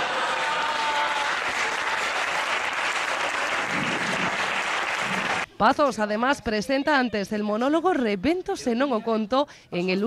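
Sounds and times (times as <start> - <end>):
audience applauding: 0.0 - 5.5.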